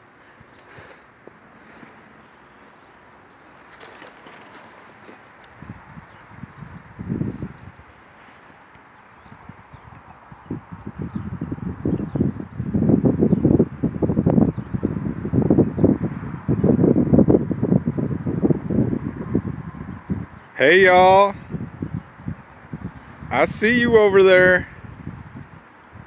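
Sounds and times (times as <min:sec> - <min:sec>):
buffeting against microphone: 0:09.2 - 0:25.5.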